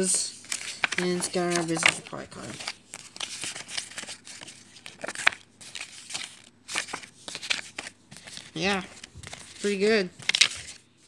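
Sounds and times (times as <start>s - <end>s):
paper rustling and sliding: 0.0s - 11.0s
sharp paper crack: 0.4s - 10.8s.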